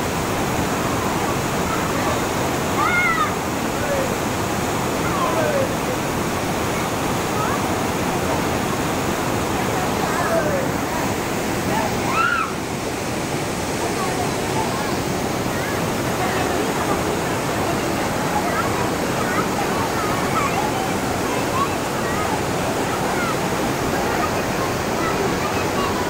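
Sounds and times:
waterfall cascading over rocks: 0.0 - 26.0
faint voices calling and talking: 0.1 - 26.0.

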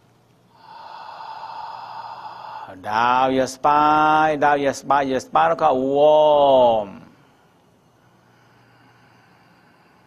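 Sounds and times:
long breathy exhale: 0.5 - 2.8, 7.1 - 10.0.

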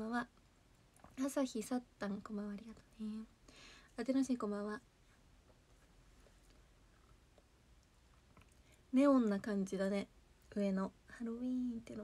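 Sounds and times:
woman speaking: 0.0 - 0.3, 1.2 - 3.3, 4.0 - 4.8, 8.9 - 12.0
faint soft clicks: 5.4 - 8.8.

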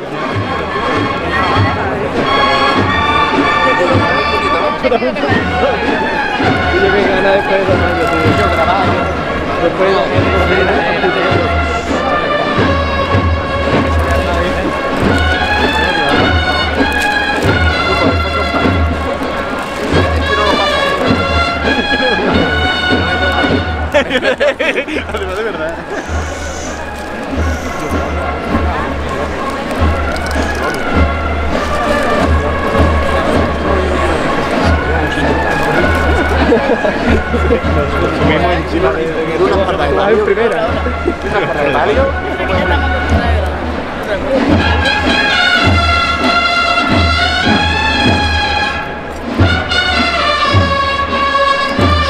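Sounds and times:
brass band playing a march: 0.0 - 52.0
bass drum beat: 5.2 - 48.6.

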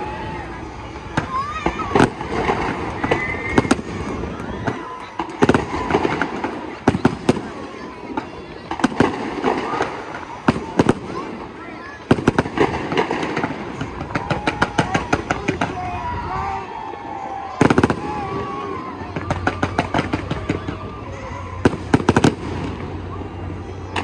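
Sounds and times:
fireworks bangs and crackles: 0.0 - 24.0.

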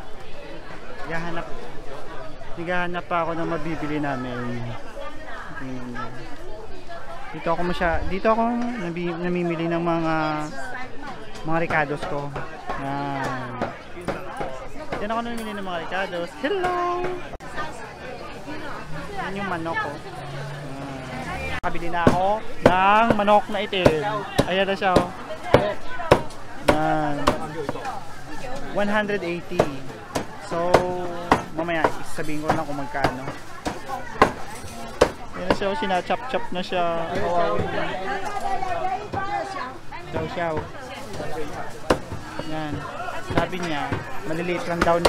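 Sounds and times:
crowd chatter: 0.0 - 45.0.

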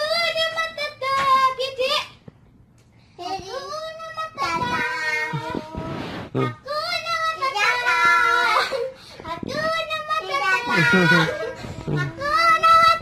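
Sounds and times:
child singing held notes: 3.2 - 13.0.

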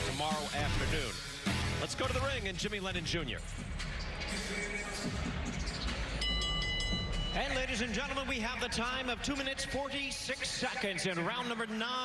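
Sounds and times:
arena crowd din: 0.0 - 12.0
boxing ring bell ringing: 6.2 - 8.0.

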